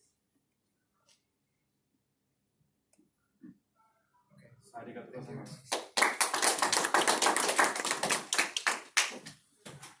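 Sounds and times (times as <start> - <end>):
small audience clapping: 5.6 - 9.5.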